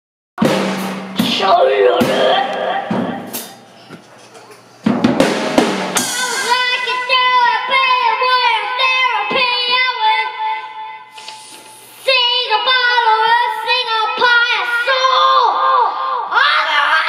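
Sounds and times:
child singing into a microphone: 6.1s - 17.0s.

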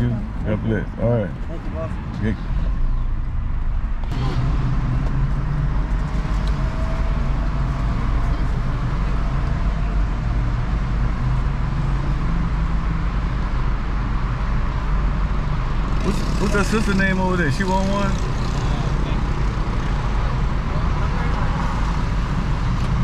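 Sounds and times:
car rumble from inside cabin: 0.0s - 23.0s
street traffic noise: 0.0s - 23.0s.

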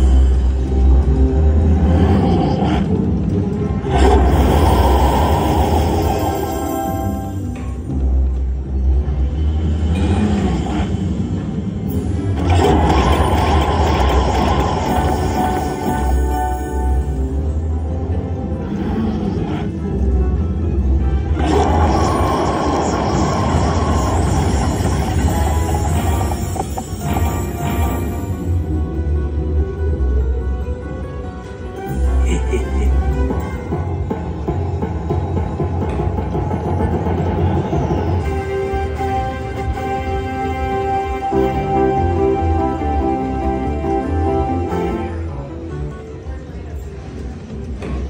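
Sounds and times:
slot machine game music: 5.8s - 8.2s, 11.9s - 18.6s, 19.9s - 34.8s, 35.5s - 45.8s.

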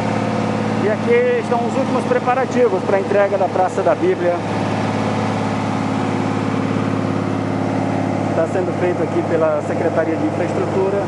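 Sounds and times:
paver engine running: 0.0s - 11.0s.

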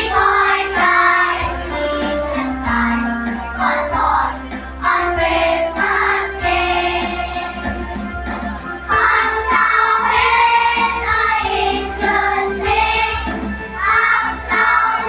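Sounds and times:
children's choir singing: 0.0s - 8.0s, 8.9s - 15.0s.

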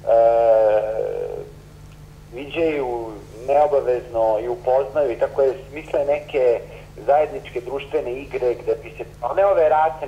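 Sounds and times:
man's held hesitation vowel: 0.0s - 1.6s.

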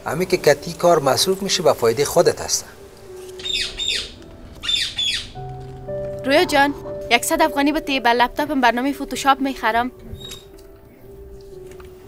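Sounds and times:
bird squawking: 3.4s - 5.4s
soft held music chord: 5.4s - 10.1s.

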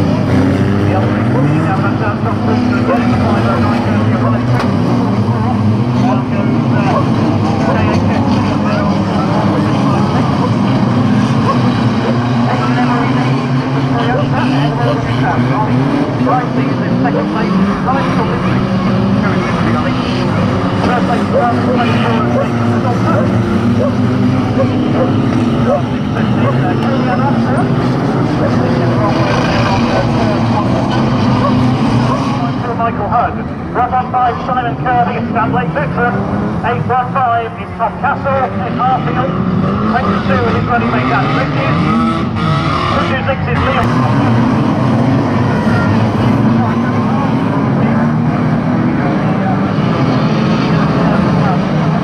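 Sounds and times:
racing car engines revving: 0.0s - 52.0s.

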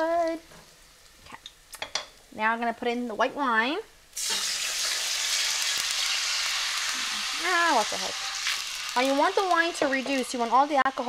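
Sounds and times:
garlic sizzling in hot oil: 0.0s - 11.0s
wine pouring into pan: 4.2s - 9.1s.

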